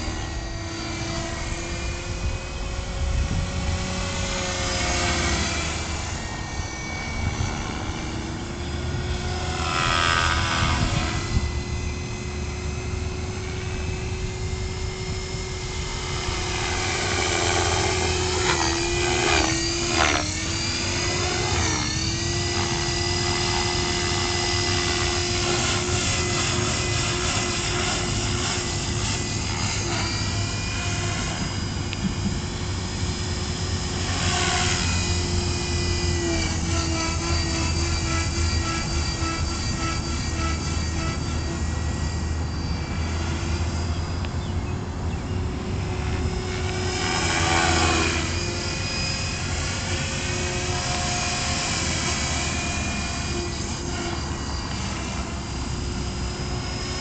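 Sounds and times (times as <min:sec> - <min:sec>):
rc helicopter motor and rotor whine: 0:00.0 - 0:57.0.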